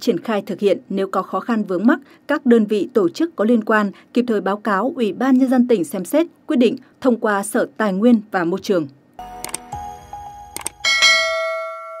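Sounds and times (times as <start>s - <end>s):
bright bell chime: 9.2s - 12.0s
quick double click: 10.6s - 10.8s.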